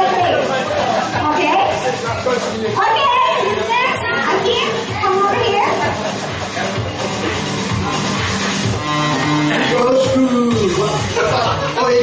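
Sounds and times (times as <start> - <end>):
high-pitched voices talking excitedly: 0.0 - 6.1.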